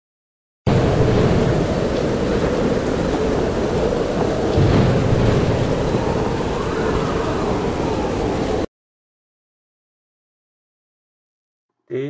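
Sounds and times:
rain: 0:00.7 - 0:08.7
waves: 0:00.7 - 0:08.7
wind: 0:00.7 - 0:08.7.

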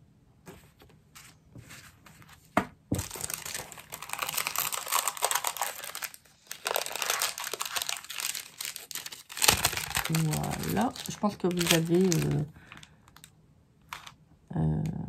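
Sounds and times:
paper rustling and crinkling: 0:00.5 - 0:13.3, 0:13.9 - 0:14.2.

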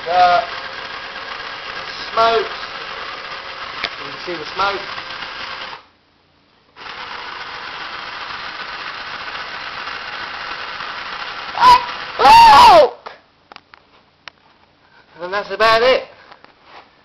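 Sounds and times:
toy motors and gears whirring: 0:00.0 - 0:05.9, 0:06.8 - 0:12.9.

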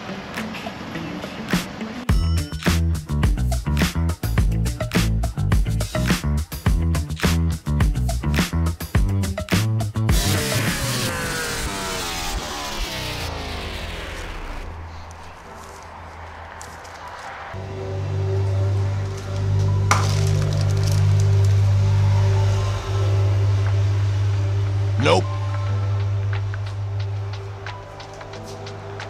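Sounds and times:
background music with low bass: 0:02.1 - 0:14.8, 0:17.6 - 0:29.0
power-down tones sliding down: 0:10.2 - 0:15.1.

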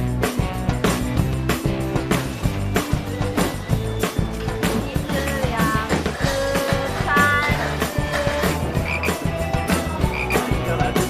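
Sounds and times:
frogs croaking: 0:08.7 - 0:09.4, 0:10.0 - 0:10.7.

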